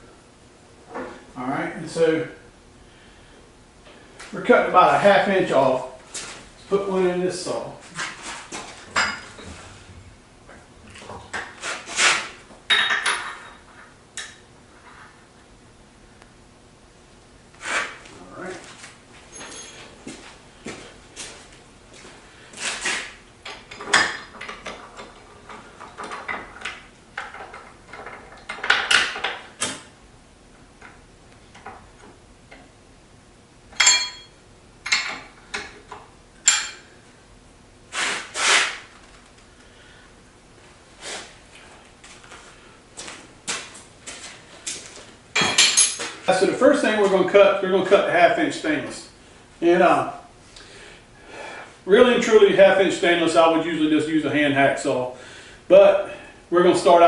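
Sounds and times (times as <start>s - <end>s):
metal clanks and clinks: 19.3s - 19.9s, 33.8s - 35.7s, 36.5s - 36.8s, 45.4s - 46.2s.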